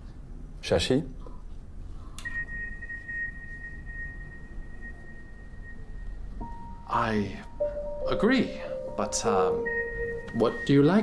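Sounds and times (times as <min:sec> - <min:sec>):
low room hum: 0:00.0 - 0:11.0
held high note: 0:04.5 - 0:11.0.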